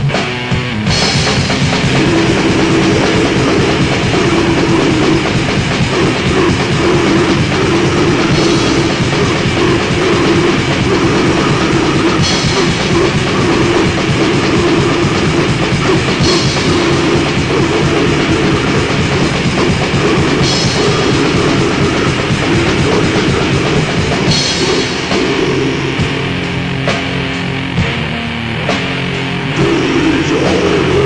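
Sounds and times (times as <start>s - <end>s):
distorted metal guitars and drums: 0.0s - 31.0s.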